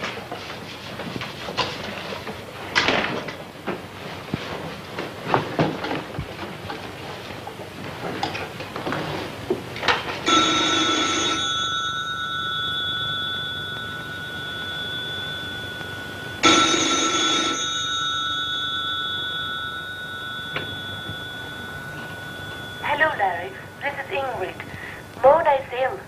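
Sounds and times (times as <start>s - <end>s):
telephone bell ringing: 10.2s - 25.1s
person speaking: 22.8s - 26.0s.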